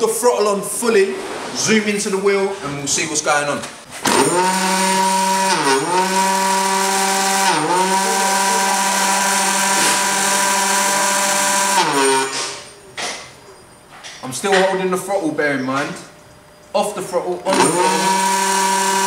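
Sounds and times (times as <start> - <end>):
electric scooter motor whining: 4.0 - 12.6, 17.5 - 19.0.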